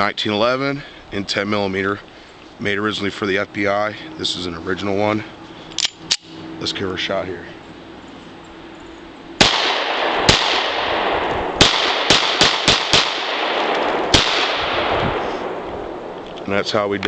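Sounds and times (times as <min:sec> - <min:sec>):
pistol shots with reverberation: 0:09.4 - 0:16.1.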